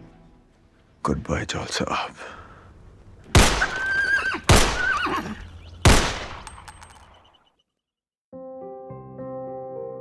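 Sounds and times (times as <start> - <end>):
pistol shots echoing: 3.4 - 3.8, 4.5 - 4.9, 5.8 - 7.0
wavering high-pitched cry: 3.7 - 5.5.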